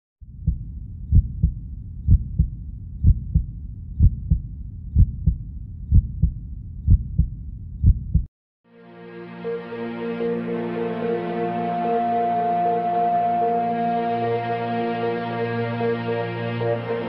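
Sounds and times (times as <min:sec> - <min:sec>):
steady low rumble: 0:00.2 - 0:08.3
heartbeat thumps: 0:00.3 - 0:08.3.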